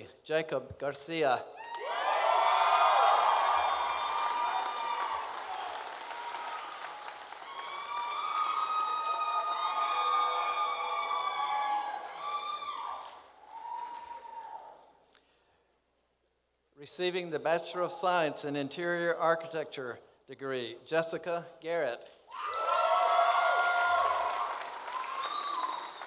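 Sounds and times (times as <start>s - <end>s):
audience applauding and cheering: 1.6s - 15.0s, 22.3s - 26.0s.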